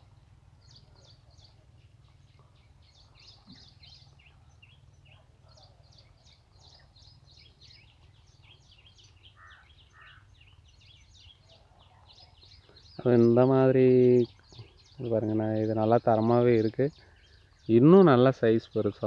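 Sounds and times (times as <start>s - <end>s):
faint birds chirping: 0.0s - 19.0s.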